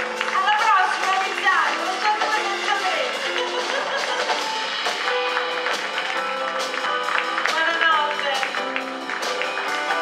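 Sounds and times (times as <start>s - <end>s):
drum kit sharp strikes: 0.0s - 10.0s
live band playing folk jazz: 0.0s - 10.0s.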